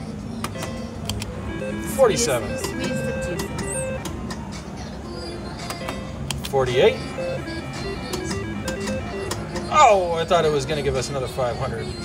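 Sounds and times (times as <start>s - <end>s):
slot machine beeping tune: 1.2s - 4.2s, 6.7s - 10.1s
slot machine reel clicks: 7.2s - 9.7s.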